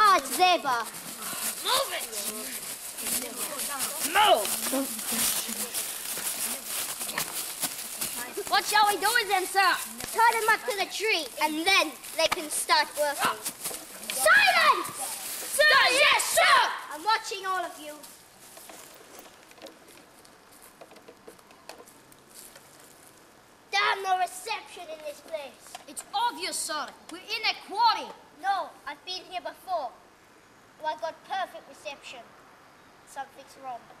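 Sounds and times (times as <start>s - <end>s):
boy's voice: 0.0s - 7.3s, 8.0s - 18.1s, 23.7s - 30.0s
footsteps in dry leaves: 0.0s - 19.5s.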